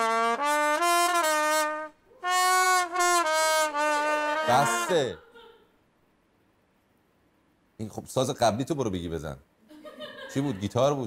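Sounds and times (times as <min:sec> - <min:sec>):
solo trumpet: 0:00.0 - 0:05.1.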